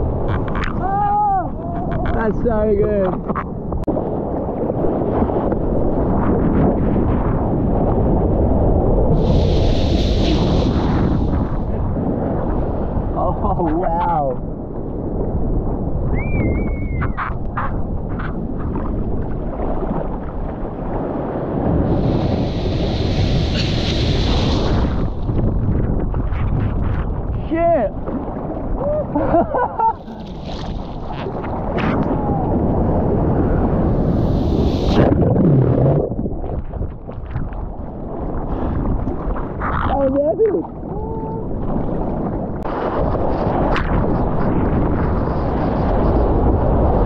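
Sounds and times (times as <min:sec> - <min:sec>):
wind buffeting microphone: 0:00.0 - 0:47.0
hissing spray: 0:09.2 - 0:11.3, 0:22.0 - 0:24.8.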